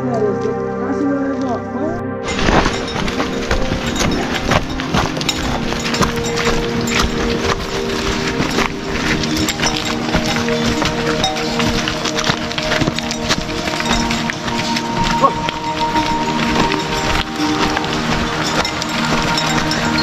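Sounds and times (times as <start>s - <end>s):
background music: 0.0s - 20.0s
hooves clopping on rocky trail: 2.2s - 20.0s.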